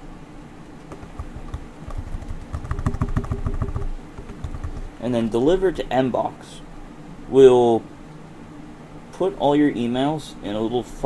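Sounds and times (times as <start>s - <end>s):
steady low hum: 0.0s - 11.0s
computer keyboard keys clicking: 0.9s - 4.9s.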